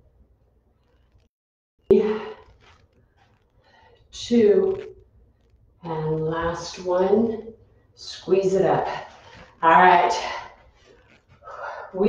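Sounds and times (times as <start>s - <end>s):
woman counting: 1.9s - 2.4s, 4.2s - 4.9s, 5.8s - 10.6s, 11.5s - 12.0s.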